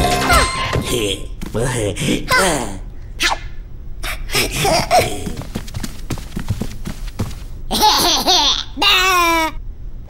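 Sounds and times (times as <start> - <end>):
cheerful cartoon voice: 2.0 - 2.8, 8.6 - 9.6.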